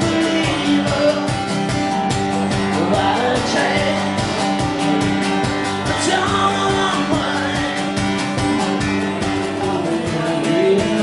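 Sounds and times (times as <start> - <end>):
man singing into a microphone: 0.0 - 1.8, 2.5 - 4.6, 5.8 - 8.2, 9.0 - 11.0
acoustic guitar strumming: 0.0 - 11.0.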